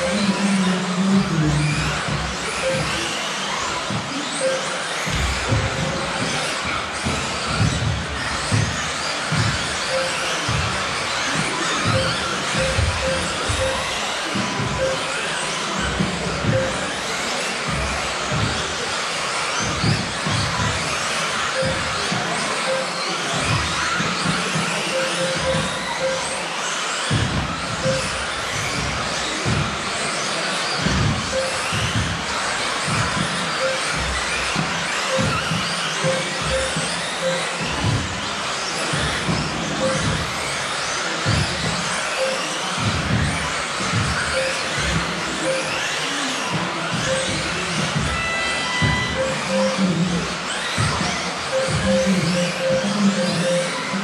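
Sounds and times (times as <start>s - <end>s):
rc car motors whining: 0.0s - 54.0s.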